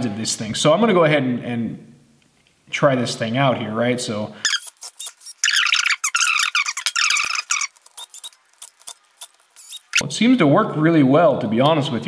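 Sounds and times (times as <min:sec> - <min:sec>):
cordless screwdriver whining: 0:04.5 - 0:10.0.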